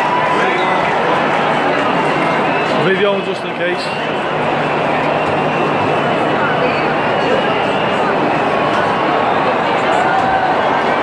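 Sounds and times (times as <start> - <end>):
stadium concert crowd roar: 0.0 - 11.0.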